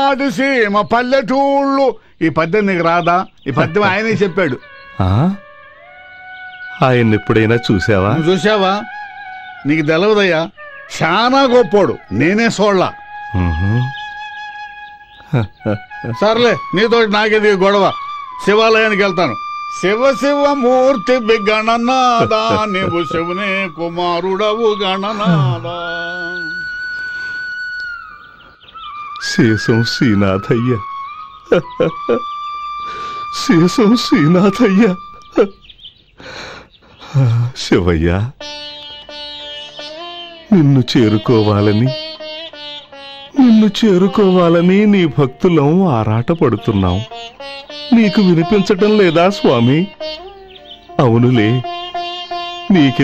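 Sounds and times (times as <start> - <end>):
man's voice: 0.0 - 5.4, 6.8 - 8.9, 9.7 - 14.0, 15.3 - 26.7, 29.2 - 30.8, 33.3 - 35.5, 40.5 - 42.0, 43.4 - 47.1, 47.9 - 50.0, 51.0 - 51.7, 52.7 - 53.0
person singing a wavering syllable: 13.3 - 14.0, 24.5 - 26.7.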